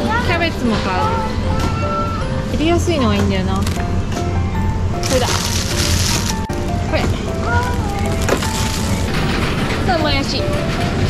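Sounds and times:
light background music: 0:00.0 - 0:11.0
plastic wrap crinkling: 0:05.0 - 0:09.4.

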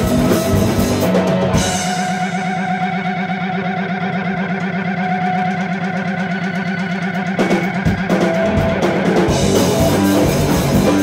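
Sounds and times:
band playing: 0:00.0 - 0:11.0
distorted wobbling instrument drone: 0:00.0 - 0:11.0.

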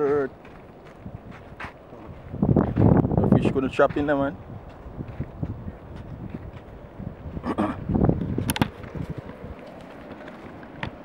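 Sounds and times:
footsteps on sandy ground: 0:00.0 - 0:11.0
wind buffeting microphone: 0:00.0 - 0:11.0.

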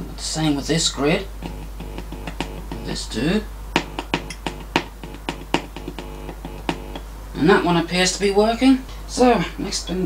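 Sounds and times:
loudspeaker mains hum buzzing: 0:00.0 - 0:10.0
sharp crackling clicks: 0:03.8 - 0:07.0.

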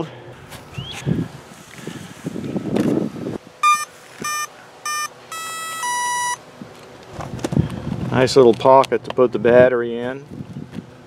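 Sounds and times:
motor start-up beeps: 0:03.6 - 0:06.4.

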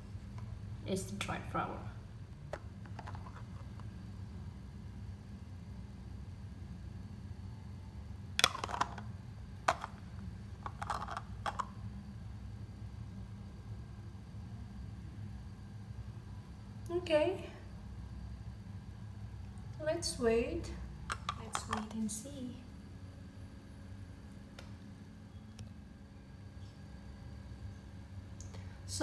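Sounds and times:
low background hum: 0:00.0 - 0:29.0.

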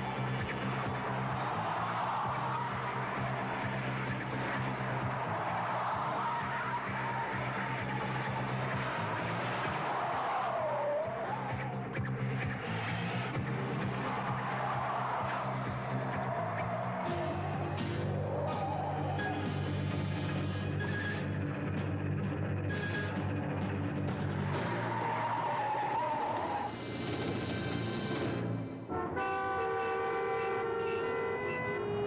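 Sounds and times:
background music: 0:00.0 - 0:32.0
car tyres squealing: 0:24.5 - 0:28.2.

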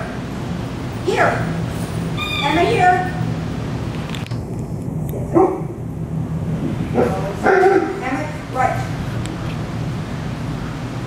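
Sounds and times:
dog barking: 0:05.3 - 0:05.7, 0:07.0 - 0:08.0.

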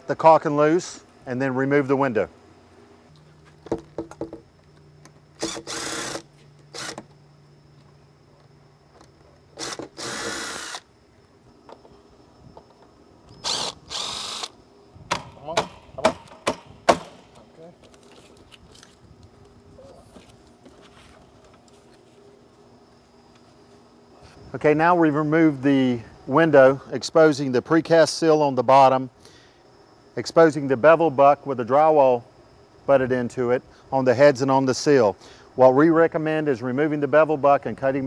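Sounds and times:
cordless drill running: 0:05.4 - 0:07.0, 0:09.6 - 0:10.9, 0:13.4 - 0:14.5.

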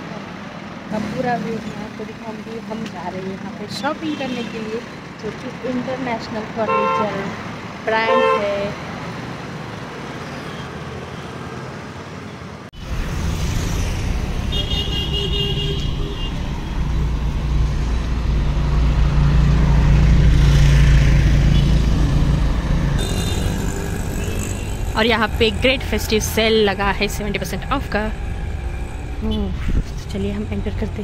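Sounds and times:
street traffic rumble: 0:00.0 - 0:31.0
vehicle horn: 0:06.7 - 0:07.3, 0:08.1 - 0:08.6, 0:14.5 - 0:16.5, 0:23.0 - 0:24.9.

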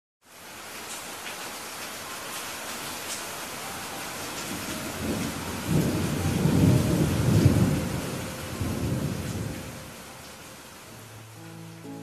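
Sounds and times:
steady rain falling: 0:00.2 - 0:12.0.

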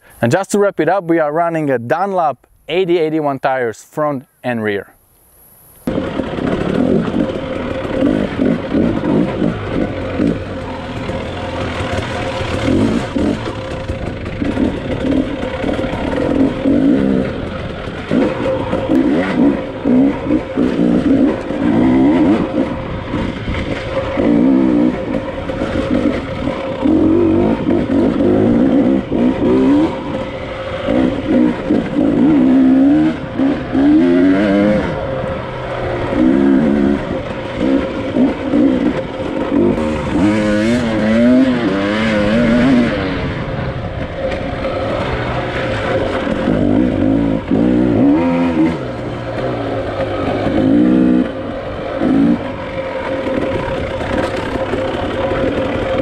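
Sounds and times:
dirt bike engine revving: 0:05.9 - 0:56.0.

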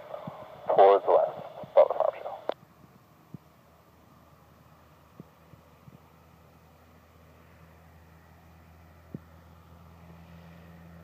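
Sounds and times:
pilot radio call through speaker: 0:00.0 - 0:02.6
radio click: 0:00.1 - 0:02.6.

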